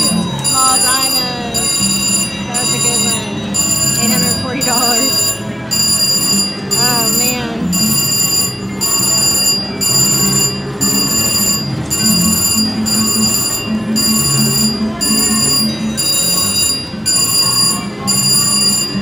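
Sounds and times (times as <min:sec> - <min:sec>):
electronic chimes and tones: 0:00.0 - 0:19.0
slot machine reels spinning: 0:00.0 - 0:19.0.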